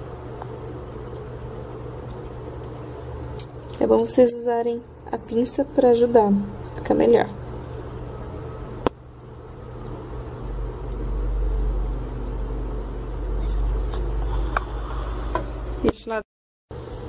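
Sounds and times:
steady hum: 0:00.0 - 0:17.0.

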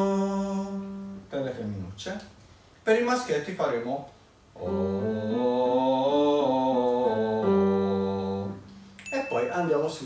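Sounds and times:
man singing a vocal scale: 0:00.0 - 0:01.2, 0:04.6 - 0:08.7.

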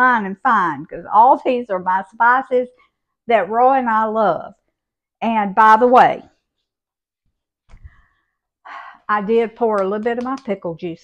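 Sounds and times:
woman speaking: 0:00.0 - 0:04.6, 0:05.2 - 0:06.4, 0:08.8 - 0:11.0
woman breathing in: 0:07.7 - 0:09.1.

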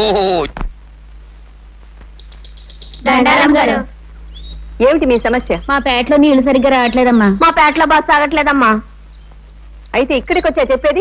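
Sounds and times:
film soundtrack low hum: 0:00.0 - 0:11.0
small bird chirping: 0:02.1 - 0:03.6, 0:04.2 - 0:08.4, 0:09.0 - 0:11.0.

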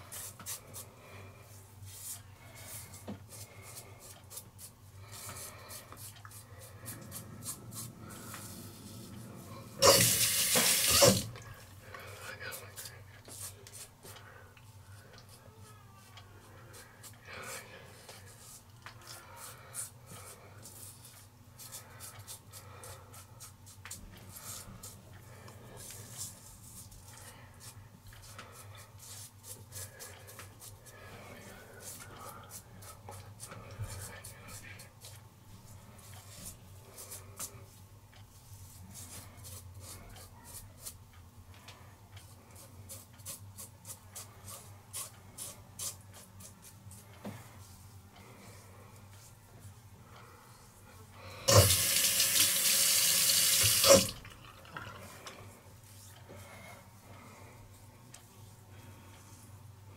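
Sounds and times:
faucet running: 0:09.8 - 0:11.3, 0:51.5 - 0:55.0.

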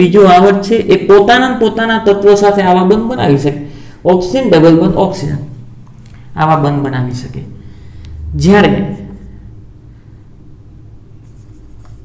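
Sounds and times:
low hum: 0:07.6 - 0:11.1
marker writing on whiteboard: 0:11.2 - 0:12.0.

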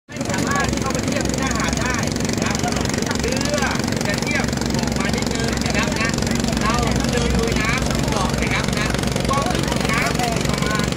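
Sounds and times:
boat engine running: 0:00.1 - 0:10.9
people talking: 0:00.1 - 0:10.9.

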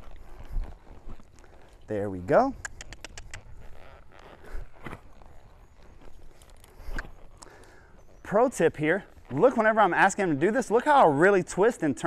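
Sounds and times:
horse hooves on sand: 0:00.0 - 0:12.0.

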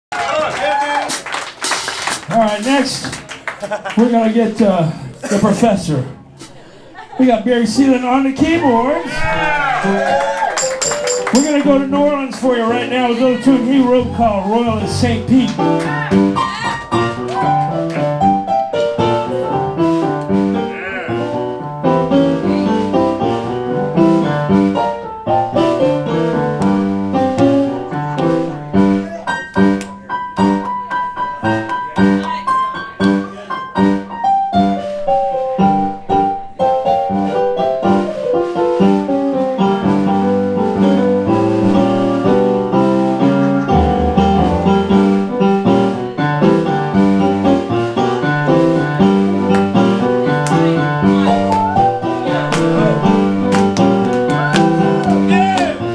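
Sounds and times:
drums: 0:01.0 - 0:03.3
keyboard: 0:09.7 - 0:55.9
bass line: 0:43.7 - 0:47.4.

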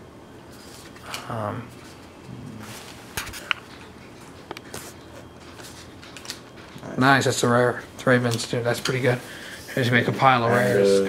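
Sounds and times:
trading cards rustling: 0:02.6 - 0:07.3.

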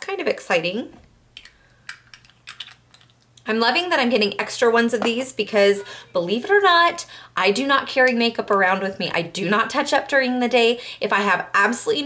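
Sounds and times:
small jars clicking and tapping: 0:01.4 - 0:03.2.

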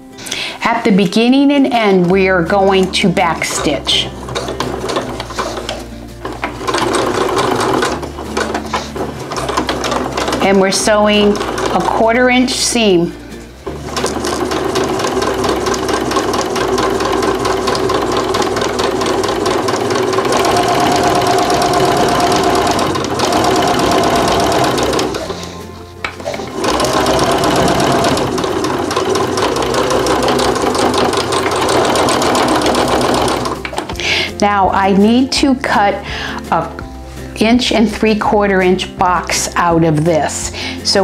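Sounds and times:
sewing machine stitching: 0:01.8 - 0:12.8, 0:13.6 - 0:34.0.

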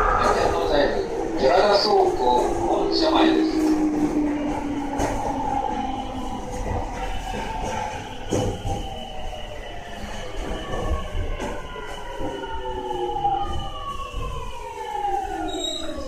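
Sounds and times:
train inverter whine: 0:00.0 - 0:16.0
wheels rumbling on rail: 0:00.0 - 0:16.0.

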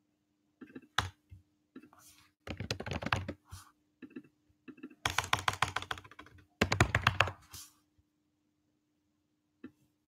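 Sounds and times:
fast typing on keyboard: 0:02.5 - 0:03.4, 0:05.0 - 0:07.4.

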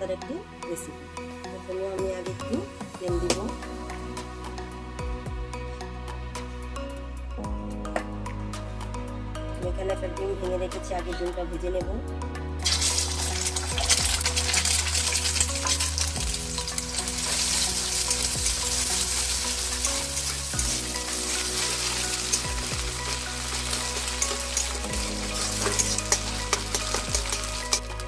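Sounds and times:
egg sizzling in hot oil: 0:12.6 - 0:28.0.

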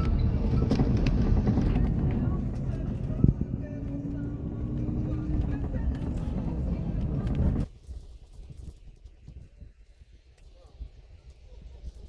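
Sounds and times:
vehicle rumble inside cabin: 0:00.0 - 0:07.7.

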